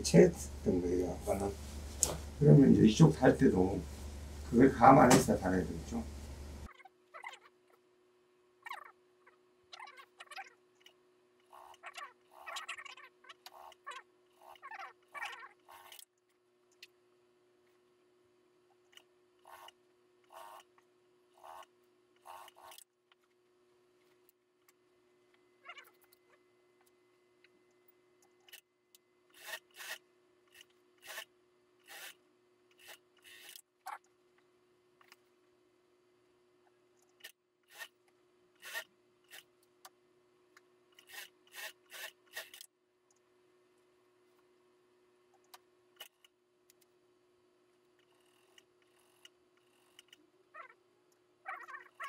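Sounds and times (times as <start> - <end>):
faint steady hum: 0.0 - 52.0.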